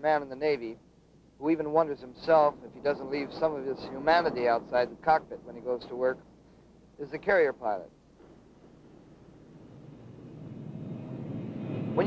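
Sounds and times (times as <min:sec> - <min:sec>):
jet aircraft engines flying over: 0:08.3 - 0:12.0.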